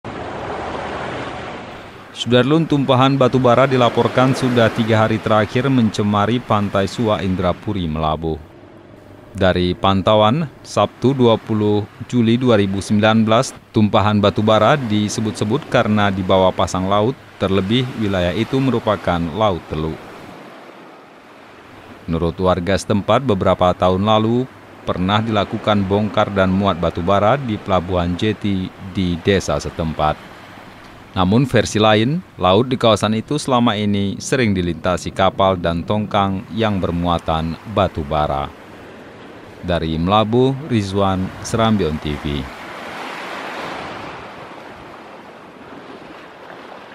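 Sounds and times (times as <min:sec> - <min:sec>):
waves washing up beach: 0:00.0 - 0:46.9.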